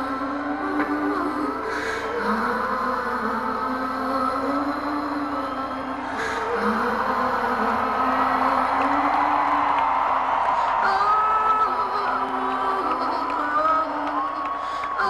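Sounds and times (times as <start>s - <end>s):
crowd noise: 0.0s - 15.0s.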